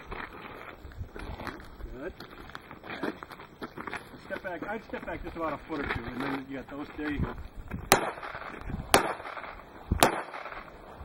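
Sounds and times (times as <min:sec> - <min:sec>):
pistol shots: 0:07.9 - 0:10.7.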